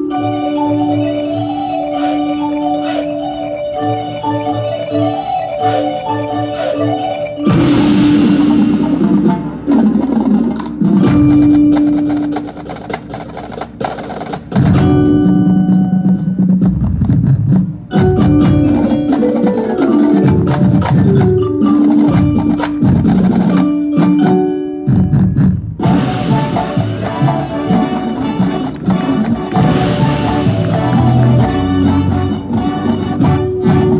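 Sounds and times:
brass chords: 0:00.0 - 0:12.3, 0:25.8 - 0:33.9
marimbas: 0:00.0 - 0:33.9
percussion hits: 0:00.0 - 0:33.9.

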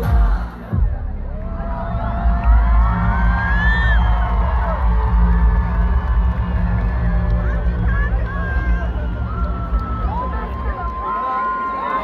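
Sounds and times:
deep droning bass music: 0:00.0 - 0:10.9
crowd screaming and cheering: 0:00.0 - 0:12.0.

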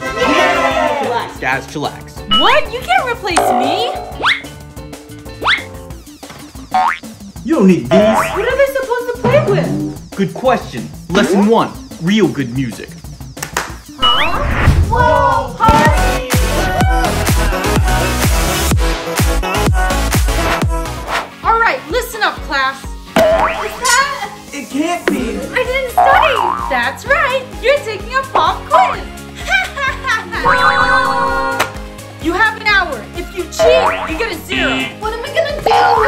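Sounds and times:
light background music: 0:00.0 - 0:36.0
rising cartoon boing: 0:03.4 - 0:04.4, 0:07.9 - 0:08.4, 0:26.0 - 0:26.8, 0:33.6 - 0:34.2.

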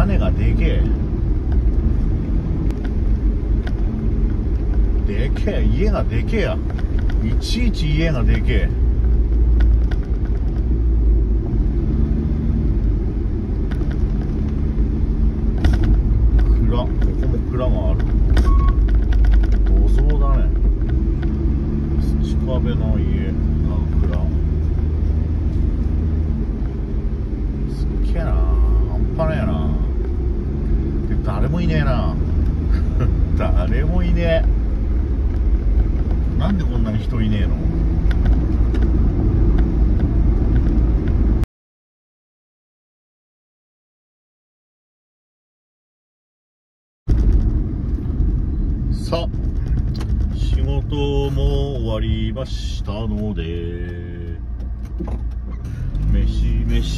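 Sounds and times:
van engine and tyres rumbling: 0:00.0 - 0:41.5, 0:47.1 - 0:56.9.

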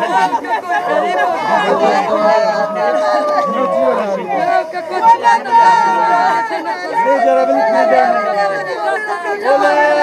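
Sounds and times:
people wailing and crying: 0:00.0 - 0:10.0.

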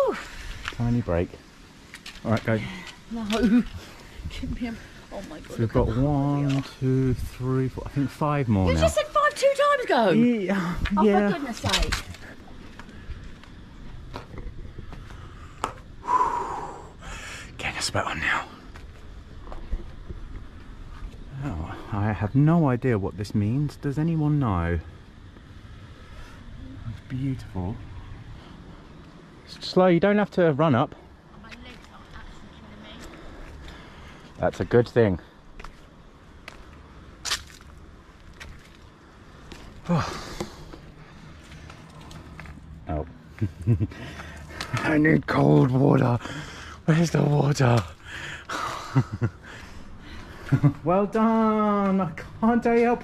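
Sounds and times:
man breathing heavily: 0:14.7 - 0:17.6, 0:39.6 - 0:42.2, 0:46.2 - 0:46.9, 0:48.0 - 0:50.6
voiced sigh: 0:16.0 - 0:17.6, 0:39.8 - 0:40.8.

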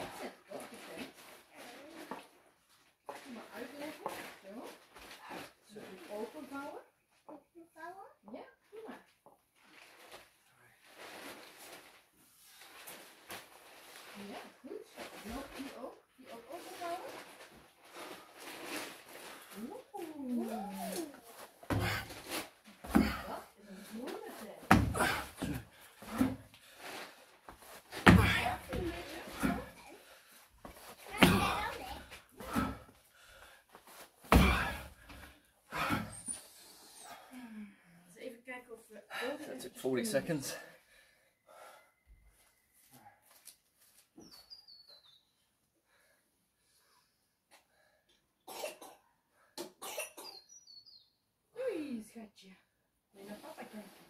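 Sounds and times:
people talking: 0:14.2 - 0:17.2, 0:19.6 - 0:21.2, 0:23.0 - 0:24.7, 0:28.2 - 0:29.9, 0:31.1 - 0:32.0, 0:53.2 - 0:53.9
child talking: 0:20.1 - 0:21.2, 0:31.1 - 0:32.1
heavy thumps: 0:21.6 - 0:23.4, 0:24.7 - 0:26.4, 0:27.9 - 0:29.8, 0:30.7 - 0:32.9, 0:34.3 - 0:35.2.

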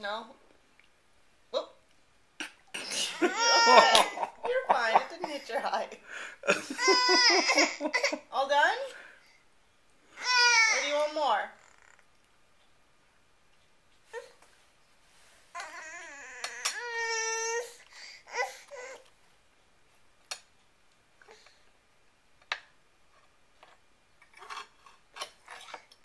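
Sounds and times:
toddler whining: 0:03.3 - 0:04.1, 0:06.7 - 0:07.7, 0:10.2 - 0:11.0, 0:15.6 - 0:19.1.

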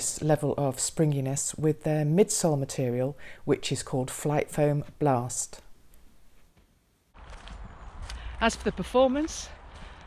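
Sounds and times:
footsteps on a trail: 0:06.6 - 0:10.0.

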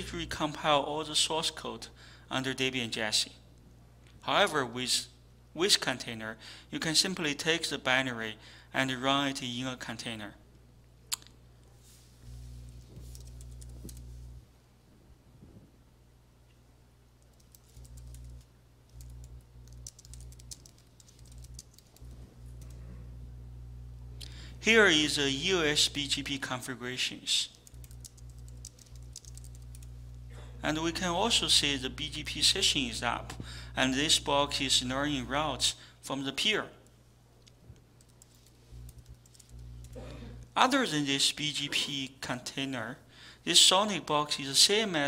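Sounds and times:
keyboard typing: 0:13.0 - 0:14.1, 0:17.2 - 0:22.8, 0:27.5 - 0:29.9, 0:38.0 - 0:40.0
low hum: 0:17.6 - 0:26.3.

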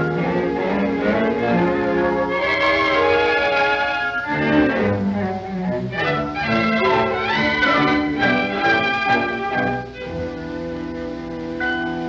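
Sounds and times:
orchestral strings melody: 0:00.0 - 0:12.0.

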